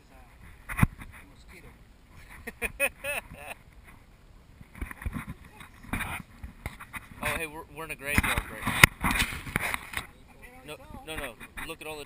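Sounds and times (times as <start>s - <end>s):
men talking: 1.1s - 3.6s, 7.2s - 8.9s, 10.1s - 12.0s
men laughing: 2.1s - 3.6s.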